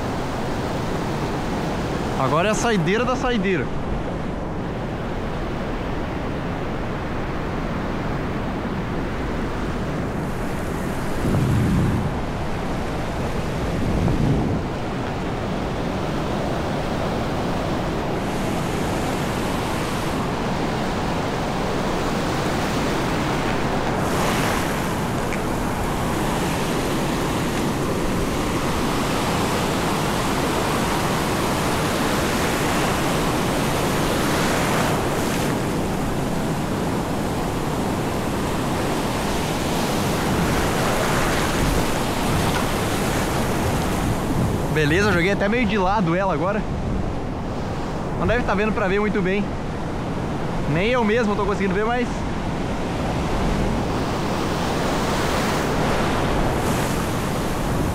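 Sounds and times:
sea surf washing in shallows: 0.0 - 57.9.

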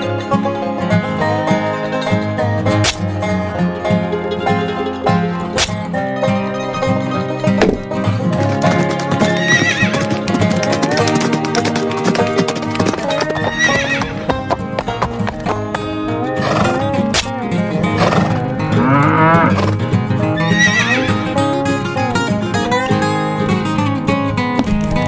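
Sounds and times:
background music: 0.0 - 25.0
horse whinnying: 8.5 - 14.3, 16.2 - 19.8, 20.4 - 21.3.

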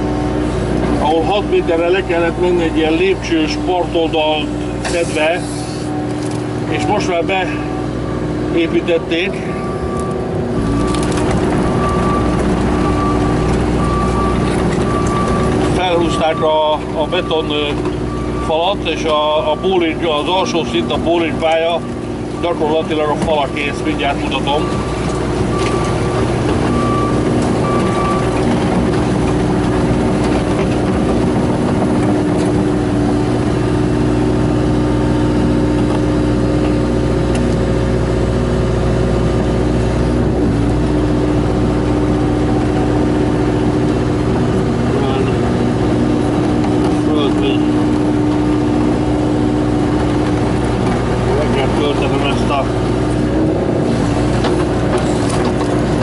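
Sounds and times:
excavator engine running: 0.0 - 56.0.

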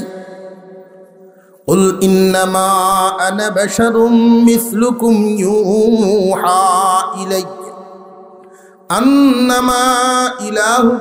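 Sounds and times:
man chanting over loudspeaker: 0.0 - 8.3, 8.9 - 11.0.

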